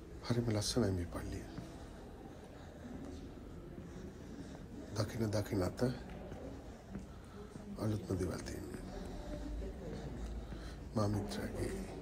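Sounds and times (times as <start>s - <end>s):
soft whispery speech: 0.0s - 12.0s.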